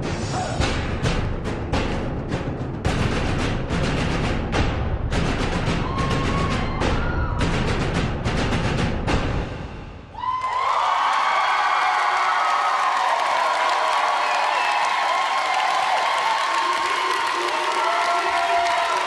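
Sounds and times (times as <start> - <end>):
music with sharp drum hits: 0.0 - 10.1
audience applauding and cheering: 5.7 - 7.4, 10.1 - 19.0.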